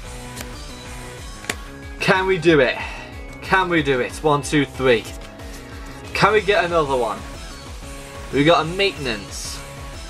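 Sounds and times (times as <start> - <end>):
background music: 0.0 - 10.0
card pack clicks: 1.4 - 1.7.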